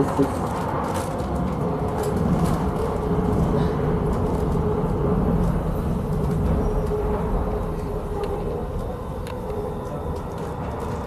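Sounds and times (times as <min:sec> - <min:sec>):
faint train whine: 0:00.0 - 0:11.0
underground train low rumble: 0:00.0 - 0:11.0.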